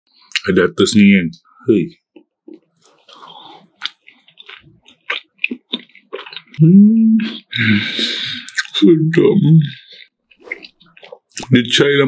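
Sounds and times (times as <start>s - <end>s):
wet chewing: 2.1s - 6.6s, 7.2s - 8.8s, 9.6s - 11.6s
person humming mmm: 6.6s - 8.5s.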